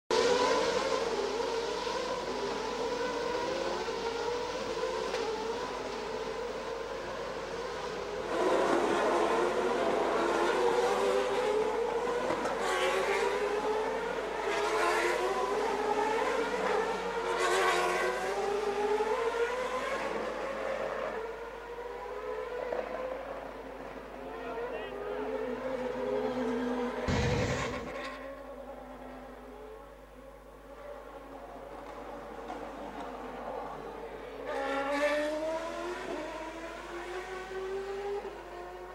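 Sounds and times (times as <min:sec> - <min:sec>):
race car engines revving: 0:00.1 - 0:38.9.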